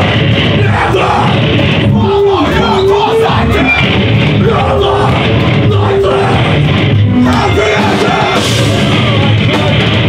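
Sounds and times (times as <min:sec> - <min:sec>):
bass guitar: 0:00.0 - 0:10.0
distorted electric guitars: 0:00.0 - 0:10.0
drums with crashing cymbals: 0:00.0 - 0:10.0.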